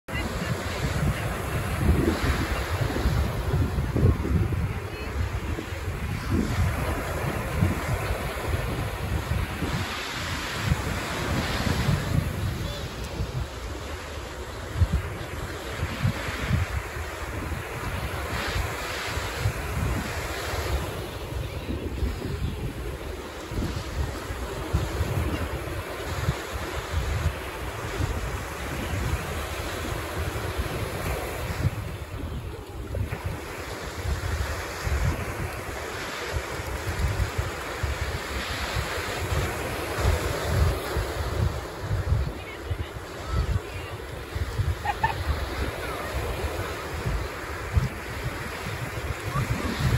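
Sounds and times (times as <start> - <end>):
surf breaking on sandy beach: 0.1 - 49.9
wind buffeting microphone: 0.1 - 49.9.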